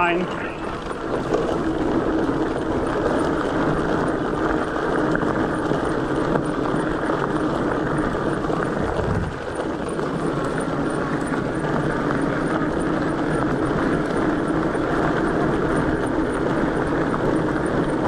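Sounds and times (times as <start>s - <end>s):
tires humming on dirt trail: 0.0s - 18.0s
wind rushing over camera: 8.4s - 10.0s.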